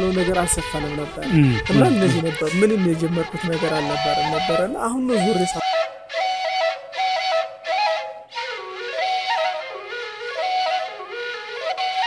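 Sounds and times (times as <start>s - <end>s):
solo flute melody: 0.0s - 12.0s.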